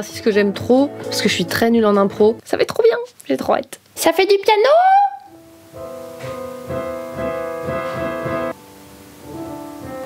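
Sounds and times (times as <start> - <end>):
piano chords: 0.0 - 2.4, 5.3 - 10.0.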